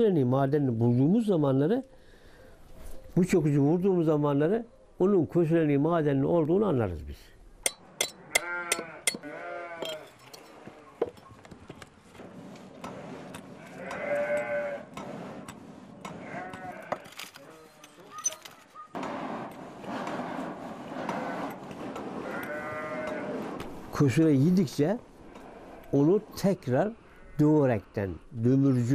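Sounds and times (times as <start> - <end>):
livestock bleating: 8.2 - 11.0, 13.6 - 14.9, 16.2 - 17.7, 22.2 - 23.4.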